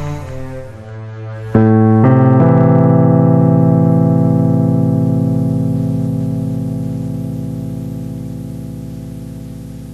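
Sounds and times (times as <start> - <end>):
digital piano chords and notes: 0.0 - 9.9.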